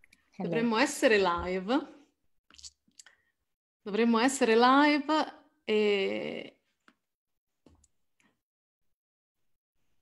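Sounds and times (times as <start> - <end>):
woman speaking: 0.4 - 2.0, 3.9 - 6.6.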